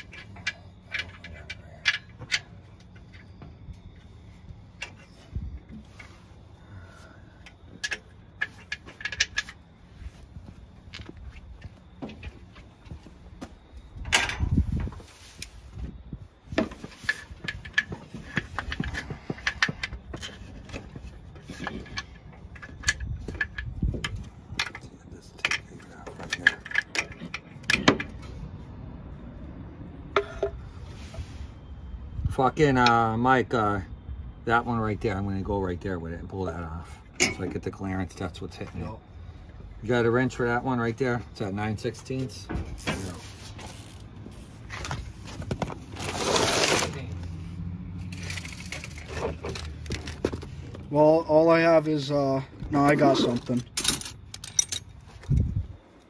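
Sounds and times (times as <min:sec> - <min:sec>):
metal tools clinking and knocking: 0:00.0 - 0:03.6, 0:04.7 - 0:06.2, 0:07.4 - 0:09.7, 0:16.6 - 0:28.4, 0:37.1 - 0:37.8, 0:48.0 - 0:50.9, 0:51.5 - 0:55.5.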